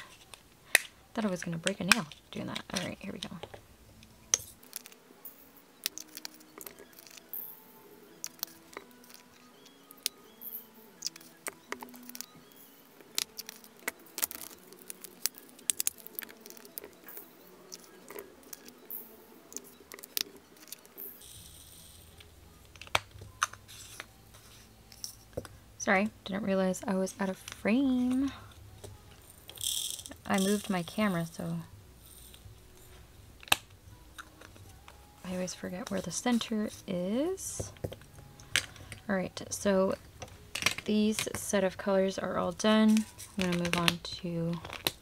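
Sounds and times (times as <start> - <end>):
soft background music: 0.0 - 45.0
tiny beads rattling into plastic: 13.1 - 24.0, 29.2 - 32.4.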